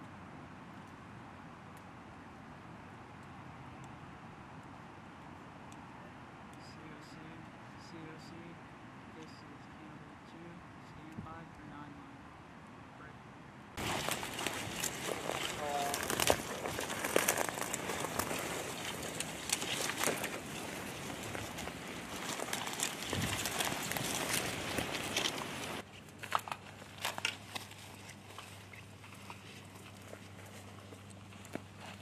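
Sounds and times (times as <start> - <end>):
faint outdoor background: 0.0 - 32.0
people pushing through dry brush: 13.8 - 32.0.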